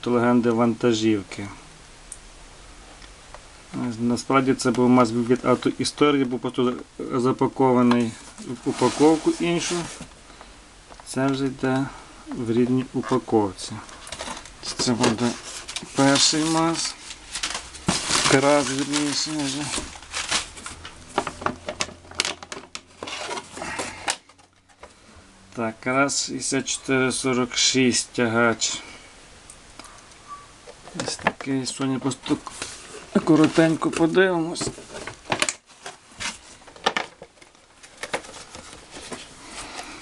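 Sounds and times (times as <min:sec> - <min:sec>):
packing paper crinkling: 0:07.2 - 0:10.1, 0:13.0 - 0:24.8, 0:30.9 - 0:40.0
boxes rubbing and tapping: 0:08.0 - 0:10.1, 0:13.9 - 0:24.8, 0:30.7 - 0:39.8
cardboard rustling and knocking: 0:14.0 - 0:24.8, 0:32.5 - 0:39.3.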